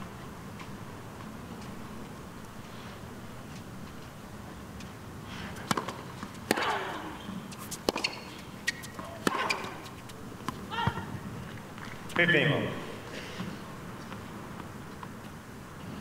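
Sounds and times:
tennis ball racket hits: 0:05.5 - 0:11.0.

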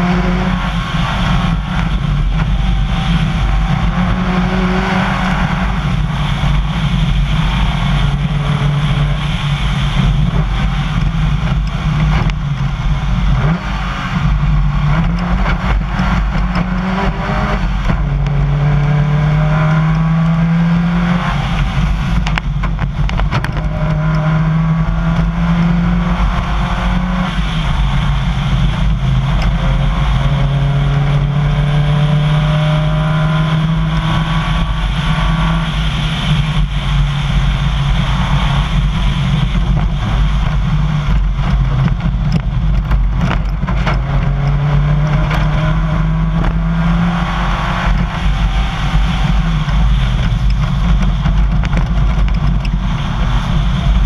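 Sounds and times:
rally car engine accelerating: 0:00.0 - 0:54.0.

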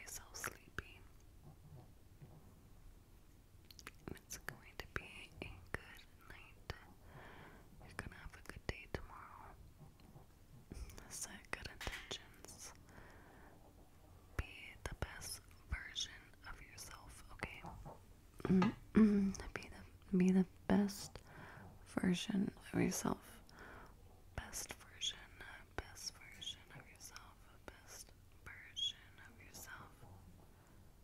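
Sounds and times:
woman whispering: 0:00.0 - 0:01.2, 0:03.8 - 0:07.0, 0:07.8 - 0:09.6, 0:10.7 - 0:12.8, 0:14.4 - 0:23.5, 0:24.4 - 0:30.0
woman speaking: 0:18.4 - 0:21.2, 0:21.9 - 0:23.4.

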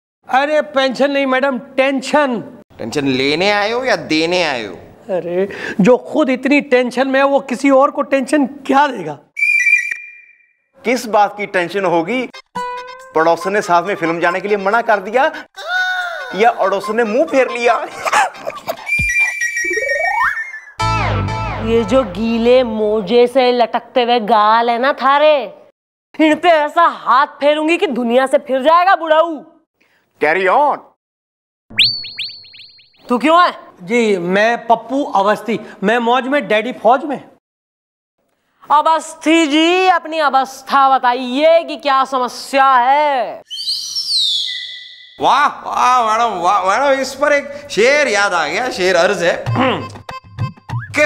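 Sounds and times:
high whistle: 0:09.4 - 0:10.7, 0:18.8 - 0:20.8, 0:31.7 - 0:33.0, 0:43.5 - 0:45.2
quick electronic chirps: 0:31.7 - 0:33.1.

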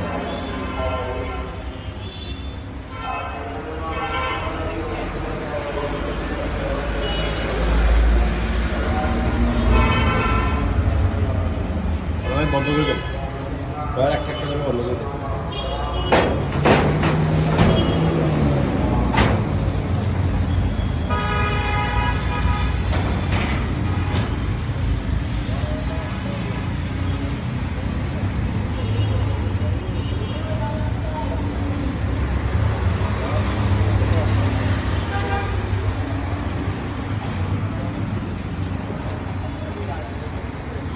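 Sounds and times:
traffic engine rumble: 0:00.0 - 0:40.9.

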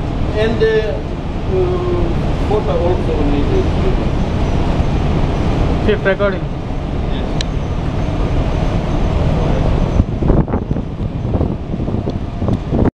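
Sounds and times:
engine-room machinery: 0:00.0 - 0:12.9.

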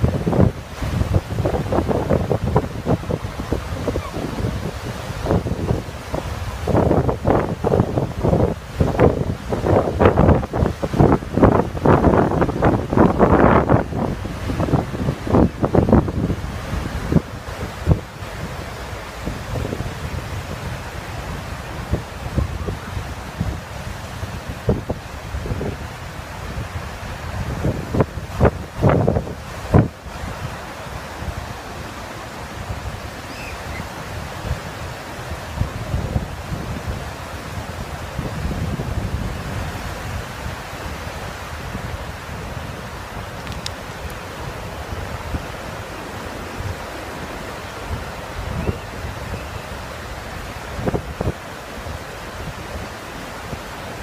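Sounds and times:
ocean surf washing up beach: 0:00.0 - 0:54.0
wind buffeting microphone: 0:00.0 - 0:54.0.

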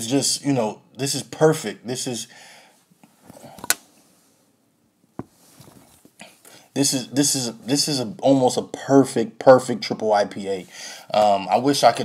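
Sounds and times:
soft rustling of movement: 0:05.2 - 0:06.4.

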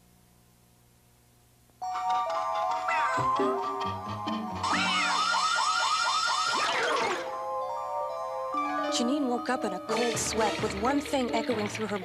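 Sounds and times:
cartoon alarm clock warble: 0:04.4 - 0:07.4
falling whistle: 0:04.6 - 0:07.3.

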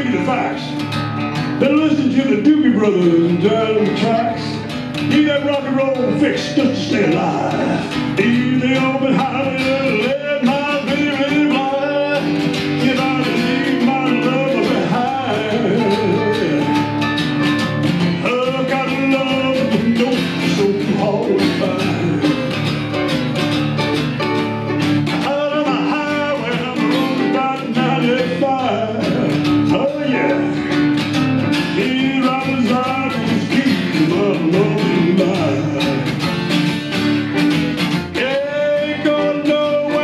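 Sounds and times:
acoustic guitar lead lines: 0:00.0 - 0:40.0
acoustic guitar strumming: 0:00.0 - 0:40.0.

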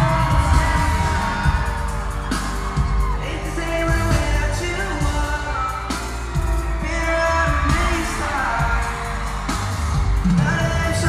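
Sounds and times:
man singing: 0:00.0 - 0:11.0
pop music with strong bass: 0:00.0 - 0:11.0.

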